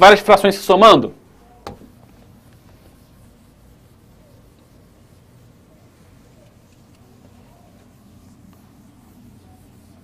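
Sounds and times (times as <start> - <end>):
low room hum: 0.8 - 10.0
eraser rubbing on whiteboard: 1.7 - 10.0.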